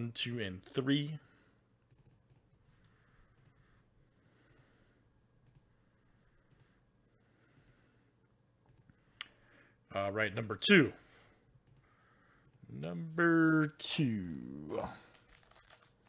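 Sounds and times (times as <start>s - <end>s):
faint low hum: 0.0s - 16.0s
computer mouse clicking: 1.9s - 2.5s, 3.3s - 3.6s, 5.4s - 5.7s, 6.4s - 6.7s, 8.6s - 9.0s, 11.6s - 12.6s.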